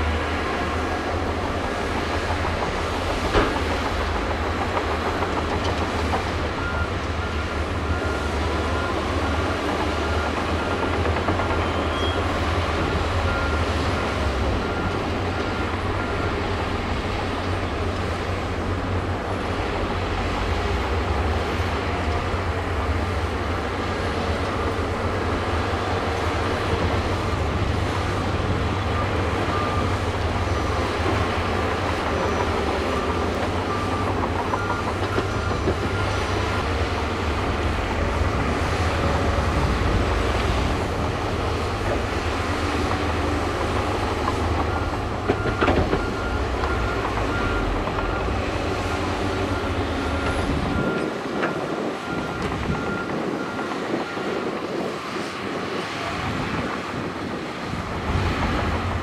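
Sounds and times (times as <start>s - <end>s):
bulldozer diesel engine rumbling: 0.0s - 59.0s.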